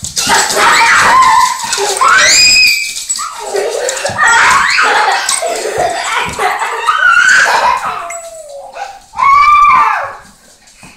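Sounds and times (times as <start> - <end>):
small dogs yipping and whining: 6.8 - 10.2.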